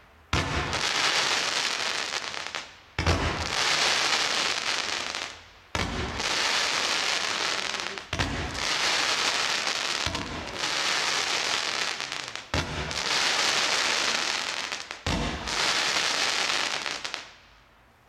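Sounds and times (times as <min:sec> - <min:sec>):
firework tails hissing: 0:00.4 - 0:17.4
firework launch thumps: 0:15.1 - 0:15.5.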